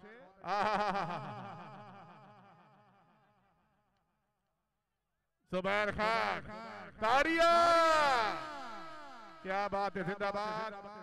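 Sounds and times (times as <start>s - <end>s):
man's voice over echoing pa: 5.5s - 11.0s.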